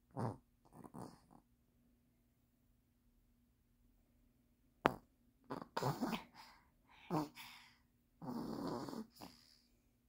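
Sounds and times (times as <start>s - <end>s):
toddler snoring: 0.1s - 1.4s, 5.5s - 7.6s, 8.2s - 9.7s.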